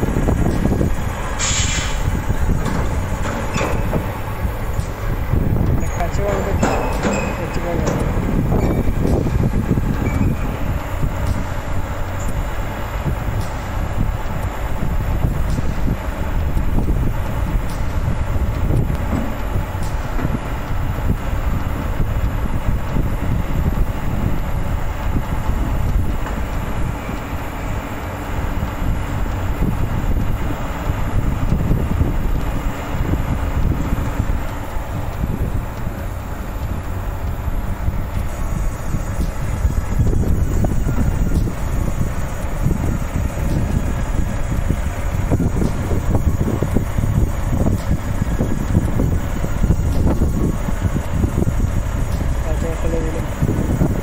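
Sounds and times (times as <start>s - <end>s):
garbage truck engine rumble: 0.0s - 54.0s
wind buffeting microphone: 0.0s - 54.0s.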